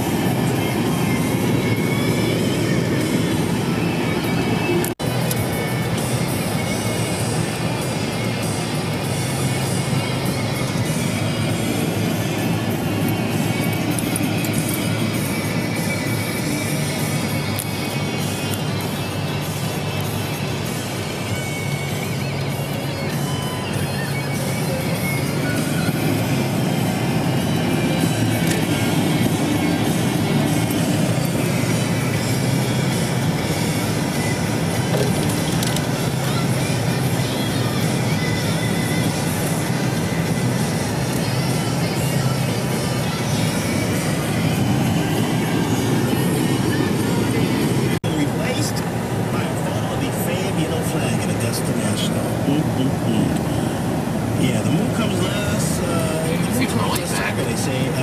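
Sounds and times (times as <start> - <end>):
car engine and road noise: 0.0 - 58.0
music on car radio: 0.0 - 58.0.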